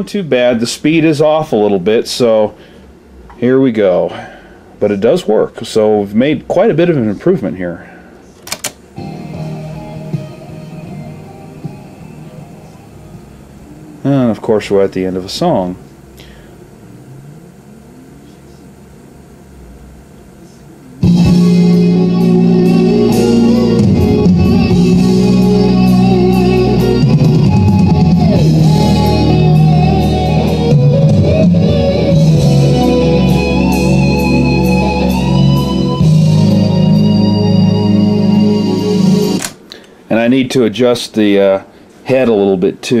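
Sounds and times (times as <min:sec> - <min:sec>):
tape hiss: 0:00.0 - 0:43.0
song with guitar: 0:09.0 - 0:14.0, 0:21.0 - 0:39.4.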